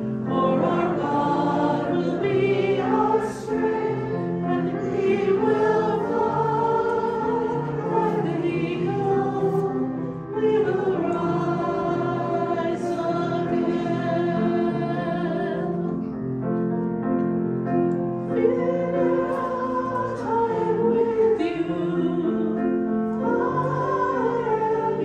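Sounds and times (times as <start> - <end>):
congregation singing a hymn: 0.0 - 16.6, 17.6 - 25.0.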